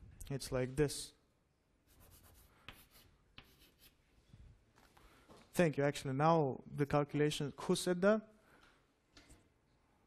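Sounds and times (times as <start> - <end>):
writing scratching on a board: 1.9 - 4.0.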